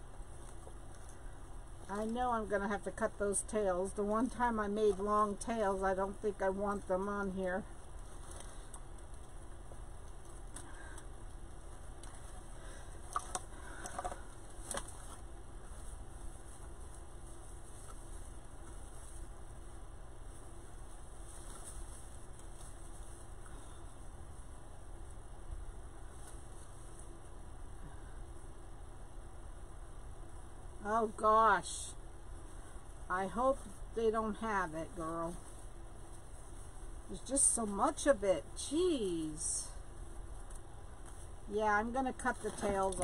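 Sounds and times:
steady low hum: 0:00.0 - 0:43.0.

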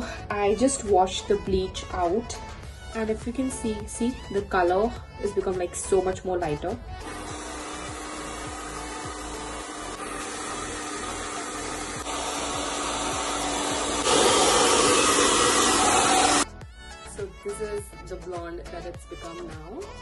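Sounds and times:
hair dryer blowing with a hum: 0:07.0 - 0:16.5.

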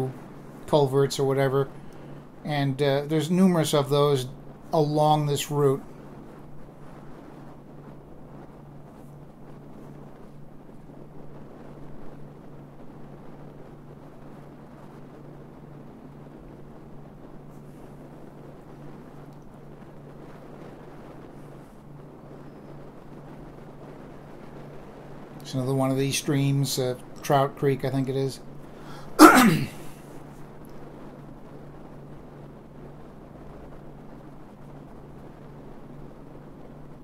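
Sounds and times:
steady low hum: 0:00.0 - 0:37.0
wind rushing over microphone: 0:00.0 - 0:37.0.

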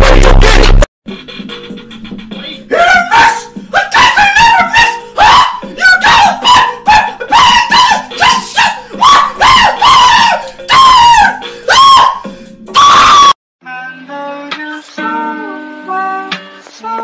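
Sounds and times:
high-pitched voice shrieking: 0:02.7 - 0:13.4
music track: 0:13.6 - 0:17.0.

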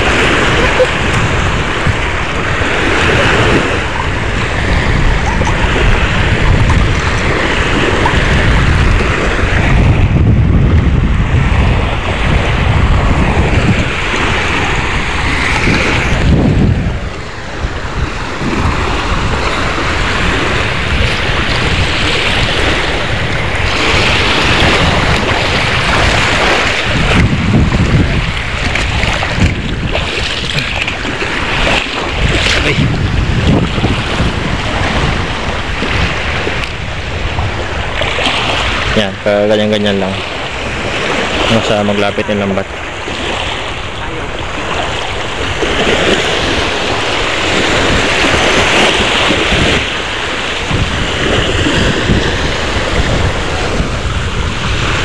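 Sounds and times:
waves washing over pebbles: 0:00.0 - 0:55.0
wind rumbling on microphone: 0:00.0 - 0:55.0.

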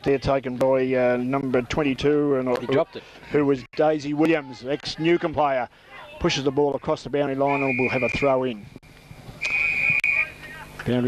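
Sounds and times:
high-pitched whistle blast: 0:07.5 - 0:08.4, 0:09.4 - 0:10.3.

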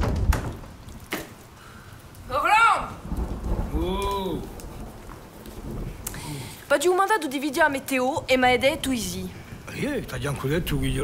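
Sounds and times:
rain falling: 0:00.0 - 0:11.0
thunder rumbling: 0:00.0 - 0:11.0.

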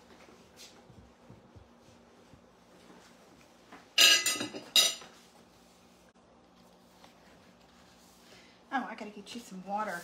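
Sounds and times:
spoon clattering on ceramic bowl: 0:04.0 - 0:05.1.

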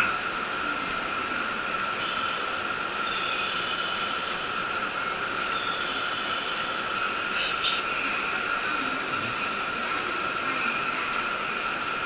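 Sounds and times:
train equipment hum: 0:00.0 - 0:12.0.

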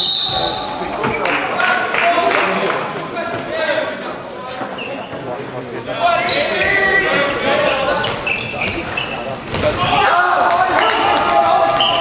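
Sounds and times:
shoes squeaking on floor: 0:04.5 - 0:05.5, 0:06.2 - 0:09.7
players shouting: 0:09.6 - 0:12.0.

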